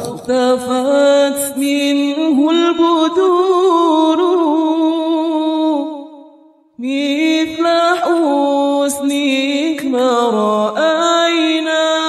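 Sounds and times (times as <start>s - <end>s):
unaccompanied devotional singing: 0.0s - 6.1s, 6.8s - 12.0s.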